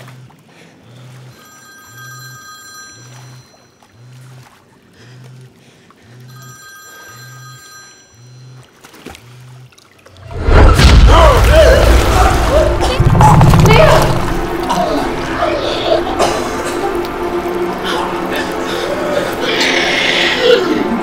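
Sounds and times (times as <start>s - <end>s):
low even pulse: 0.0s - 6.6s, 8.2s - 21.0s
phone ringing: 1.4s - 3.7s, 6.3s - 8.4s.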